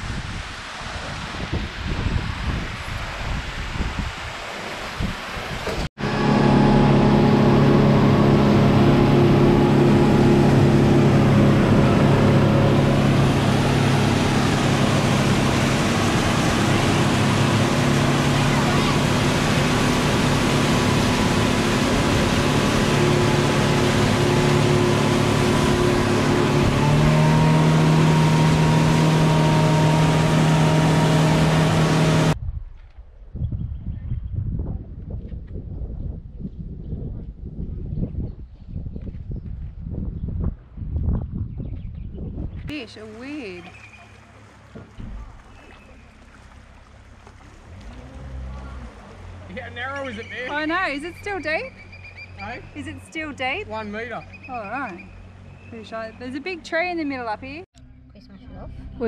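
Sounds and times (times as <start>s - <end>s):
water splashing along hull: 0.0s - 32.4s, 42.7s - 57.6s
motor boat engine running: 5.6s - 32.4s, 41.8s - 59.0s.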